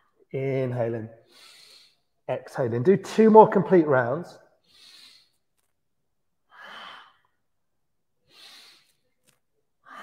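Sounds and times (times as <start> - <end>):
man breathing: 1.2 - 2.2, 4.5 - 5.7, 8.2 - 9.2.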